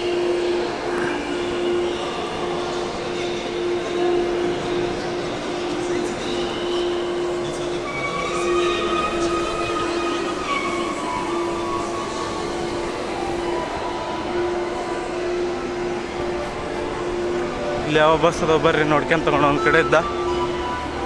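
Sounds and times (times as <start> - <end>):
high whining tones: 0.0 - 21.0.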